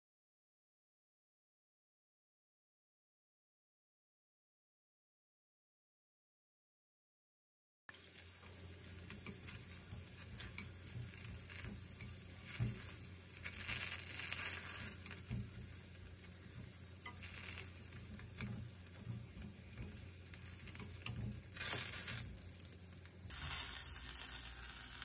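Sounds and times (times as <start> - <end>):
food sizzling in frying pan: 7.9 - 25.0
chopsticks tapping and scraping pan: 8.4 - 23.5.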